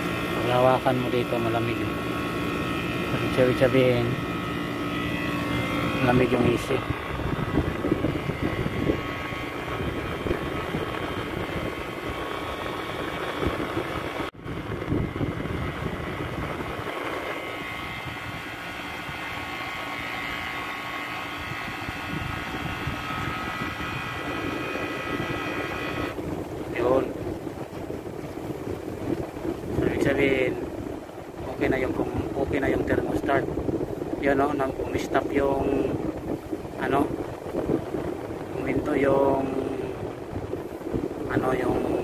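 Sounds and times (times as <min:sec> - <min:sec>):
air conditioner humming: 0:00.0 - 0:42.0
compressor high whine: 0:00.0 - 0:42.0.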